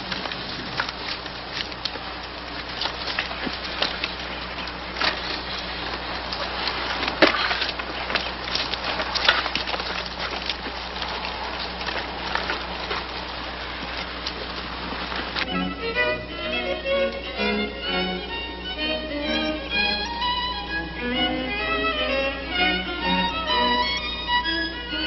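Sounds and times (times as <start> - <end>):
crackling film soundtrack hiss: 0.0 - 25.0
steady low hum: 0.0 - 25.0.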